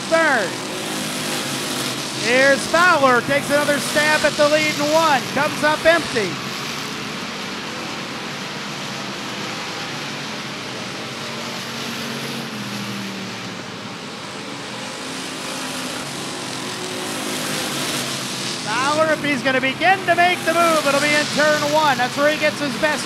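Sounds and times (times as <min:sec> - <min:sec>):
race car engines at speed: 0:00.0 - 0:23.0.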